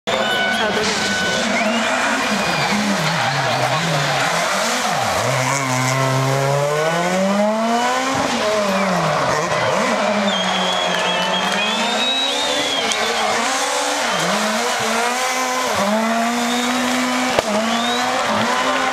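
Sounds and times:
rally car engine revving: 0:00.1 - 0:18.9
tyre squeal: 0:09.7 - 0:18.2.

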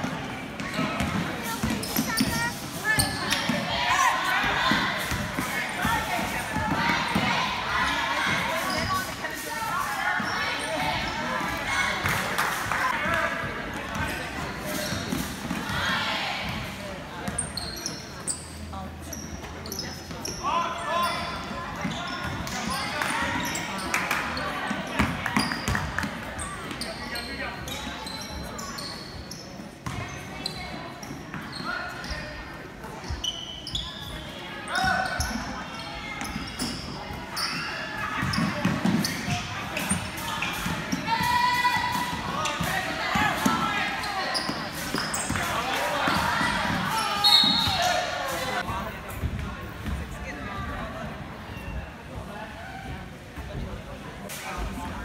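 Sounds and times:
basketball bouncing on court: 0:00.0 - 0:03.7
sneaker squeaks: 0:00.0 - 0:50.0, 0:51.4 - 0:52.0.

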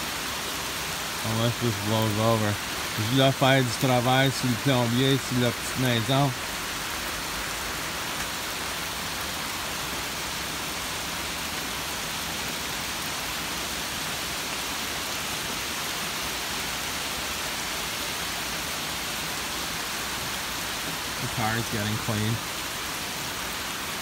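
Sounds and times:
steady rain hiss: 0:00.0 - 0:24.0.

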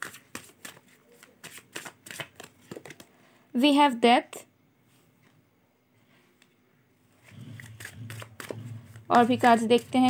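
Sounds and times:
cards being shuffled: 0:00.0 - 0:03.1, 0:07.2 - 0:10.0.

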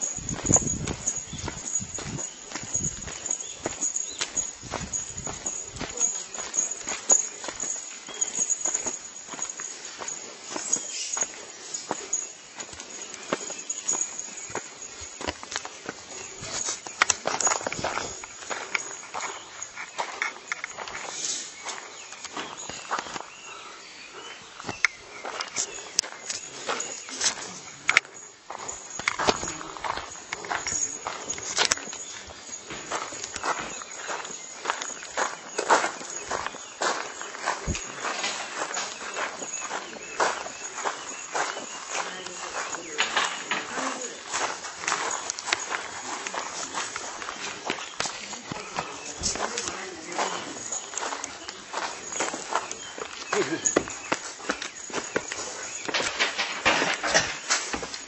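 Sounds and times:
footsteps of people walking: 0:00.0 - 0:58.0
voices talking: 0:00.0 - 0:58.0.

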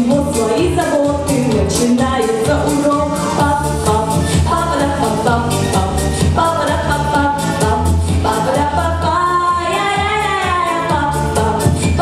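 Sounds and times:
girl singing into a microphone: 0:00.0 - 0:12.0
pop backing track: 0:00.0 - 0:12.0.

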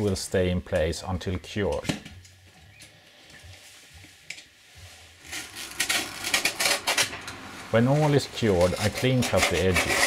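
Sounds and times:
knife scraping and cutting foam: 0:08.4 - 0:10.0.

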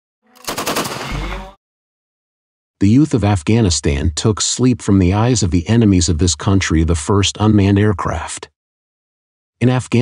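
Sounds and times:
machine-gun fire: 0:00.4 - 0:01.5.

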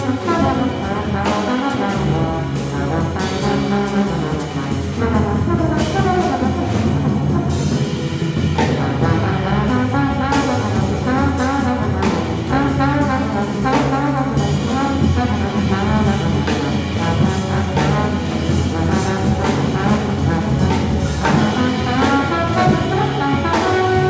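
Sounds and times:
drum kit with cymbals: 0:00.0 - 0:24.0
plucked upright bass: 0:00.0 - 0:24.0
trombone melody: 0:00.0 - 0:24.0.

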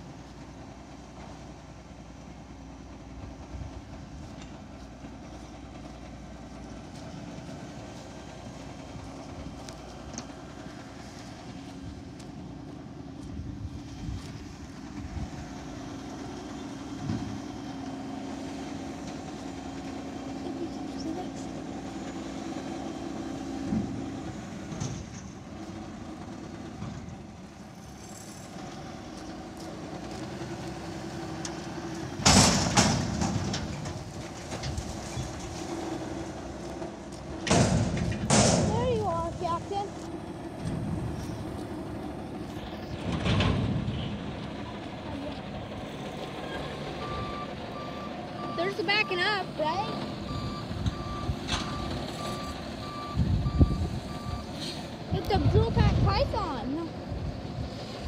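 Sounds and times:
garbage truck running: 0:00.0 - 0:58.0
loud dumpster dumping noises: 0:14.4 - 0:20.5, 0:21.3 - 0:58.0
reversing beeps: 0:47.0 - 0:54.6.

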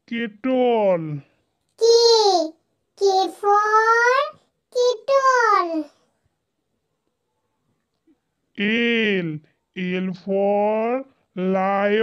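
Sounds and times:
child making sing-song sounds: 0:01.8 - 0:06.0.

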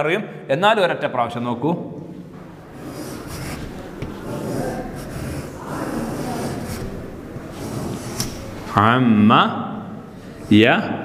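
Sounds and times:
chalk scraping on chalkboard: 0:02.7 - 0:08.7.

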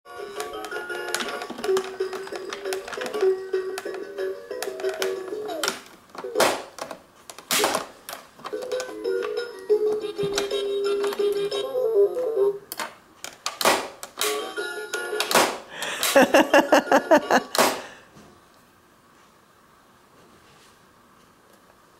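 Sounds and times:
tinny electronic toy tune: 0:09.0 - 0:12.5.

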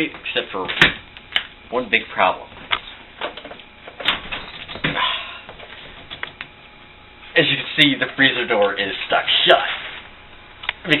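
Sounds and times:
sharp clicks and knocks: 0:02.7 - 0:06.5.

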